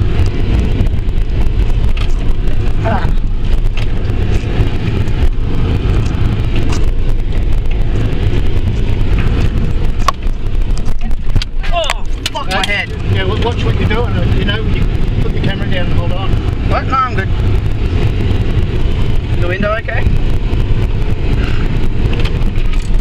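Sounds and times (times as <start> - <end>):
vehicle engine rumble: 0.0 - 23.0.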